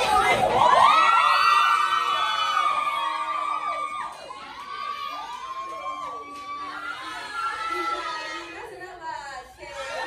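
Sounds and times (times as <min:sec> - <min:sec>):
women screaming and cheering: 0:00.0 - 0:10.0.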